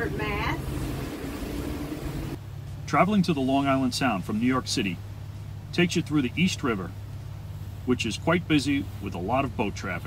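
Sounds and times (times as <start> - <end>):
boat engines running: 0.0 - 10.0
wind and water noise: 0.0 - 10.0.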